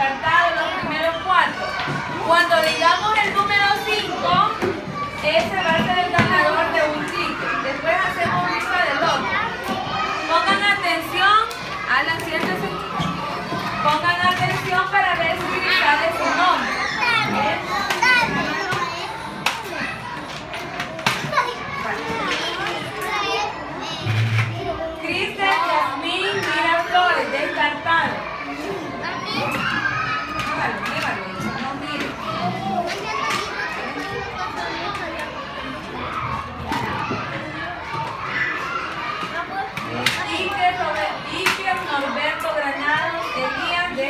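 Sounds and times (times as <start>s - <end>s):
young children chattering: 0.0s - 44.0s.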